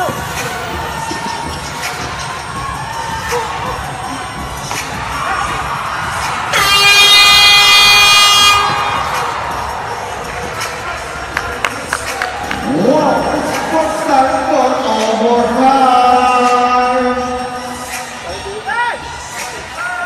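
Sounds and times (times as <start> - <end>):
arena crowd noise: 0.0 - 20.0
scoreboard buzzer horn: 6.5 - 9.0.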